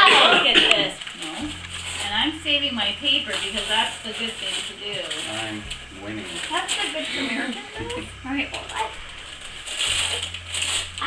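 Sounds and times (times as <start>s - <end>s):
wrapping paper rustling: 0.0s - 11.0s.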